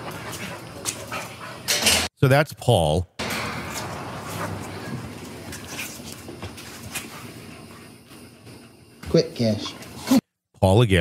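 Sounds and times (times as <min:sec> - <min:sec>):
rough noisy haze: 0:03.2 - 0:10.0.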